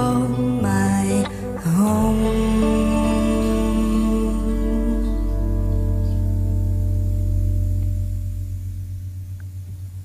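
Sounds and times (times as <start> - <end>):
deep bass note: 0.0 - 10.0.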